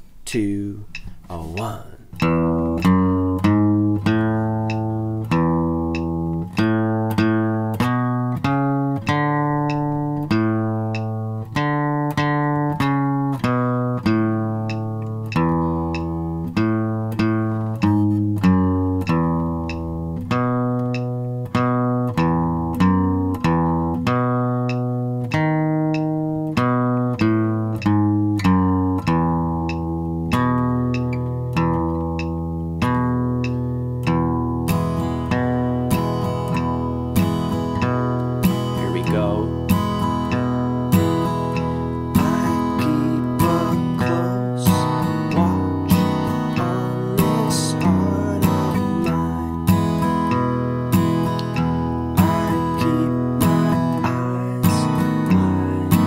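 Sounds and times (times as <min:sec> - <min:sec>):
acoustic guitar country picking: 0:00.0 - 0:56.0.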